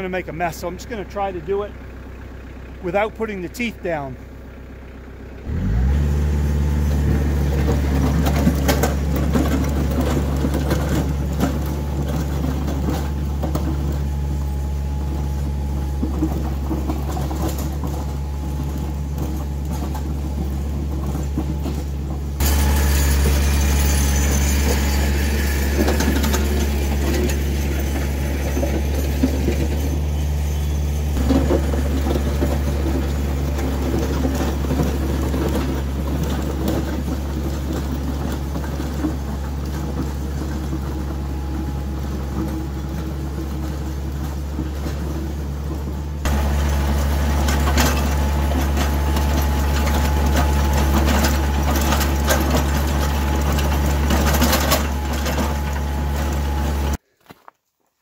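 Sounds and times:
tractor engine running: 0.0 - 57.0
blade scraping gravel: 6.0 - 57.4.

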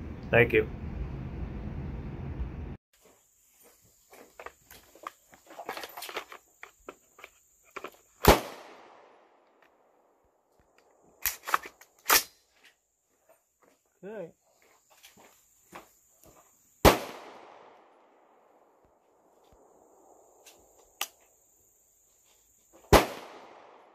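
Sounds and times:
rifle shots echoing: 8.2 - 9.4, 16.8 - 18.6, 22.9 - 23.9.

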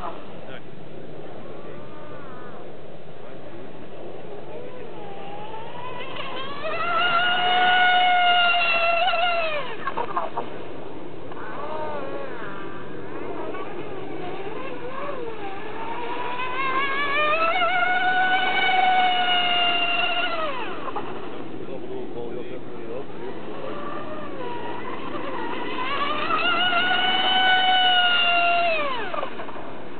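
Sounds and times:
model speedboat motor whine: 0.0 - 29.9.

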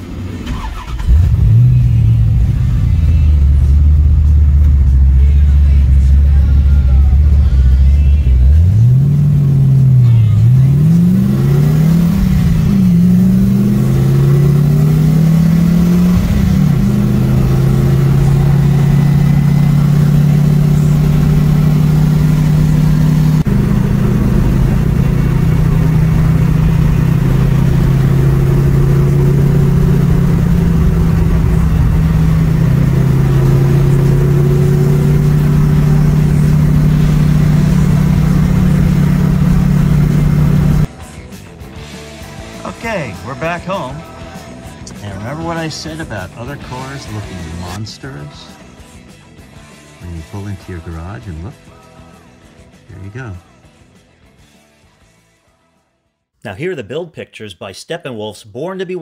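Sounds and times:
car engine accelerating and cruising: 0.0 - 40.9, 44.8 - 47.8.

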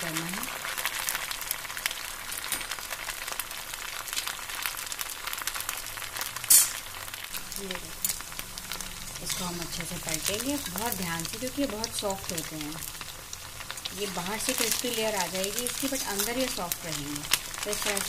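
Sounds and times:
food deep-frying in hot oil: 0.0 - 18.0.

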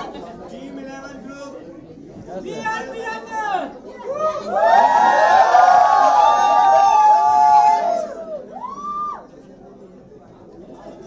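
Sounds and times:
low chatter: 0.0 - 11.0
group of people cheering: 4.1 - 9.2.

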